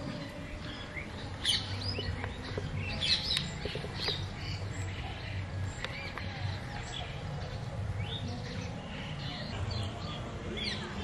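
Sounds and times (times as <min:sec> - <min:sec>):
birds chirping and squawking: 0:00.0 - 0:11.0.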